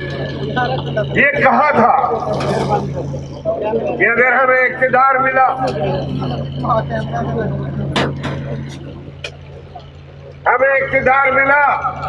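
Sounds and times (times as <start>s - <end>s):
faint crowd voices: 0.0s - 12.0s
steady low hum: 0.0s - 12.0s.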